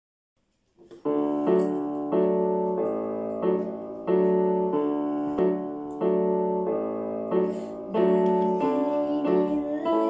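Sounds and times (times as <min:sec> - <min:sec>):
piano chords: 0:00.8 - 0:10.0.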